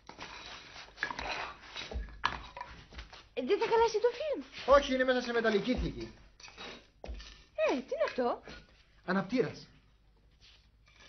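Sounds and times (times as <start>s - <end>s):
hands scraping through debris: 0.0s - 8.2s.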